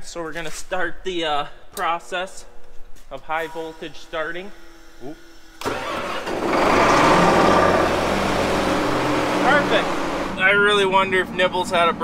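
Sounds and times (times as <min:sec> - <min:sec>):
tractor diesel engine starting: 0:05.6 - 0:10.6.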